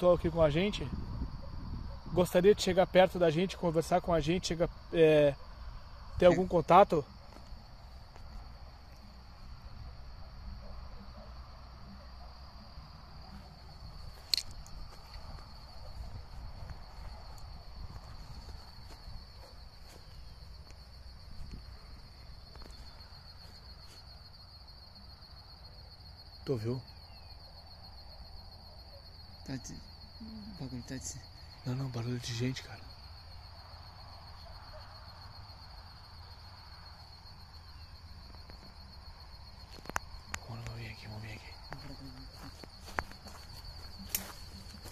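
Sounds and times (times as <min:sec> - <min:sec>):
wind rumble: 0:00.0 - 0:02.2, 0:13.2 - 0:23.2
crickets chirping: 0:00.0 - 0:44.9.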